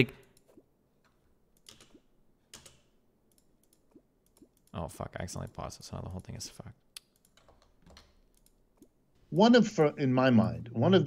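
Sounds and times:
computer keyboard clicks: 1.6s - 4.8s, 7.0s - 8.9s.

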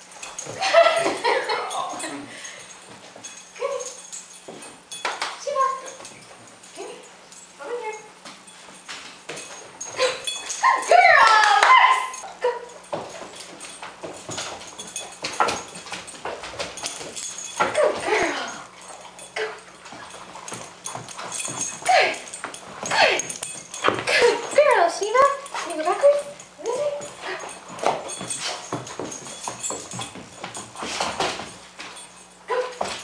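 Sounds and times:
paws clicking on floor: 0.0s - 33.0s.

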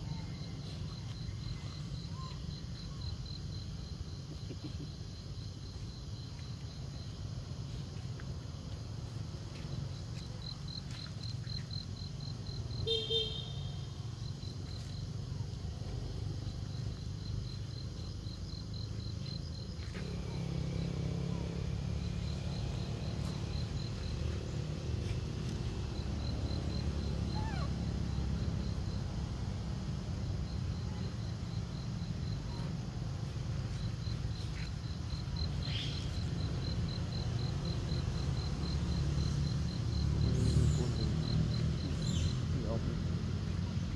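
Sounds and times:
insect chirping: 0.0s - 43.9s
low outdoor rumble: 0.0s - 43.9s.

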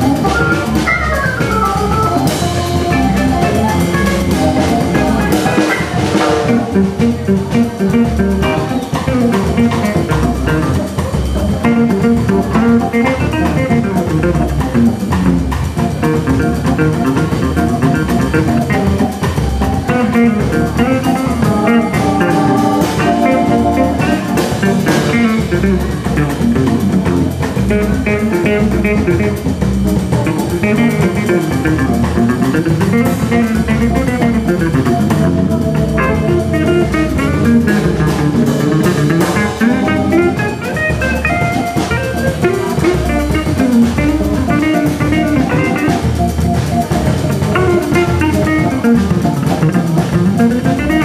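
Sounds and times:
drum kit with cymbals: 0.0s - 51.0s
hollow-body guitar lines: 0.0s - 51.0s
organ bass notes: 0.0s - 51.0s.

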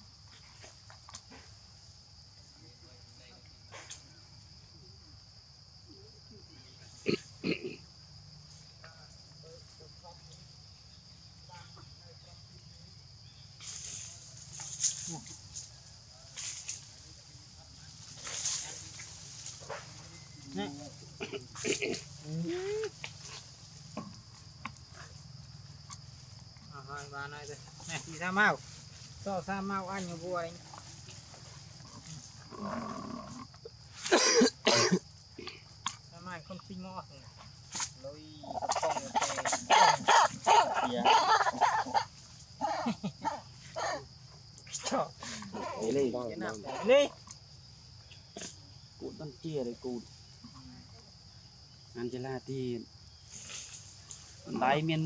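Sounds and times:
monkey grunts: 21.2s - 22.7s, 38.4s - 44.0s
monkey coo call: 38.4s - 44.1s.

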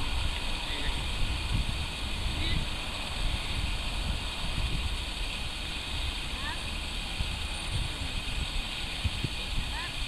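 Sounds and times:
steady outdoor hiss: 0.0s - 10.0s
wind buffeting microphone: 0.0s - 10.0s.

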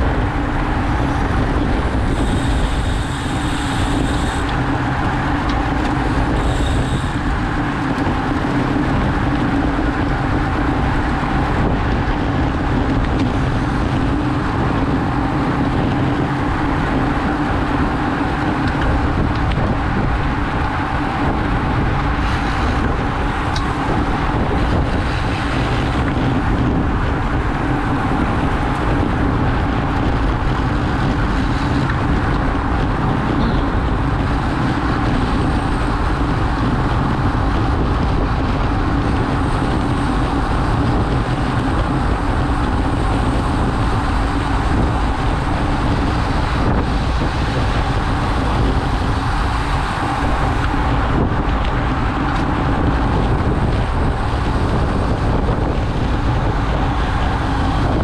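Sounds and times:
tyres rumbling on road: 0.0s - 58.0s
wind noise on microphone: 0.0s - 58.0s.

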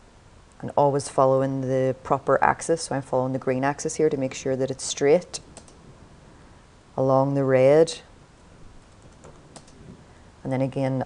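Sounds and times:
computer keyboard keystrokes: 9.0s - 9.8s.

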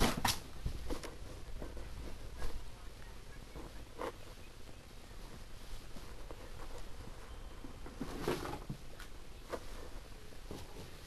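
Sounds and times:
rustling of handled toys: 0.0s - 11.0s.

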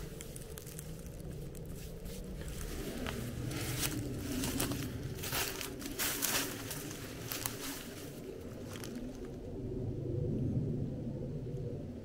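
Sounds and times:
footsteps crunching through dry leaves: 0.0s - 9.2s
low rumble: 0.0s - 12.0s.

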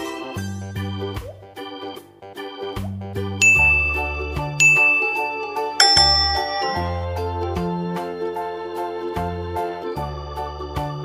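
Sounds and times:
background music: 0.0s - 11.0s
bright ding sound effect: 3.4s - 7.4s.

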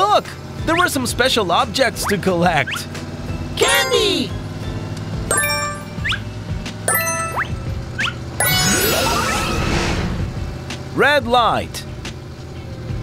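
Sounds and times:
background music: 0.0s - 11.0s
cartoon car engine hum: 0.0s - 13.0s
bright pickup chimes: 3.6s - 4.3s, 5.3s - 6.2s, 6.9s - 9.5s.

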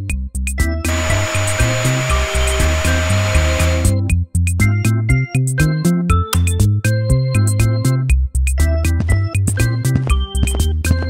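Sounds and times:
background music: 0.0s - 11.0s
vacuum cleaner motor whine: 0.9s - 4.0s.

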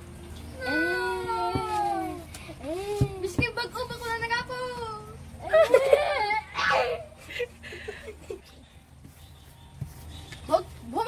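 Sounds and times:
child crying out: 6.3s - 7.1s.

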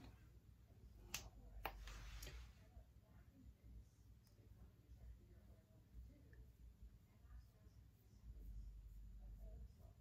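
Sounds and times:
soft rustle: 1.4s - 2.8s.

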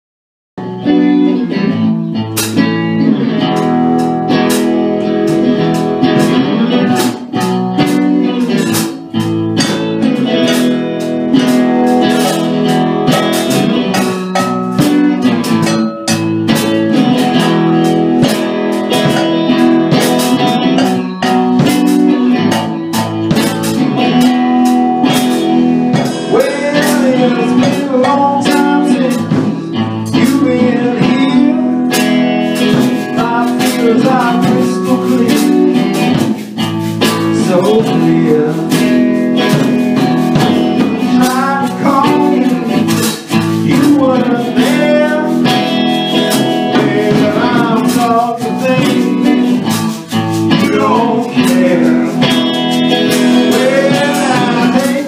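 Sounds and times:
electric guitar: 0.6s - 55.0s
drum and cymbal hits: 2.2s - 55.0s.

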